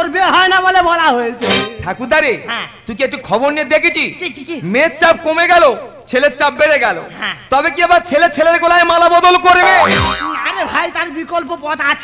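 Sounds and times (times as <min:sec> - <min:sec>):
man speaking quickly: 0:00.0 - 0:12.0
comic pitch drop effect: 0:09.6 - 0:10.5.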